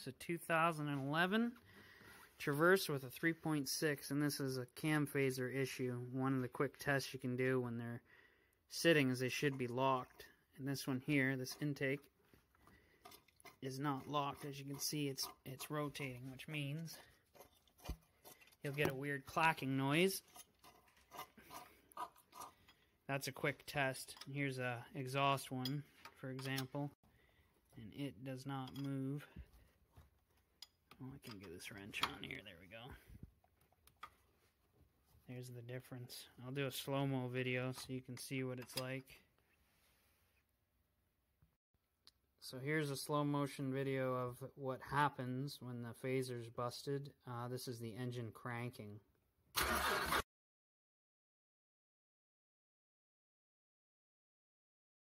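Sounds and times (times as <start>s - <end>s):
engine cranking by starter: 49.6s - 50.2s.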